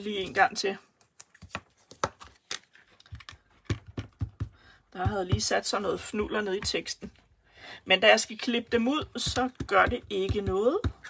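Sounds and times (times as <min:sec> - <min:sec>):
rubber stamp tapping: 0:03.1 - 0:05.6, 0:09.0 - 0:11.0.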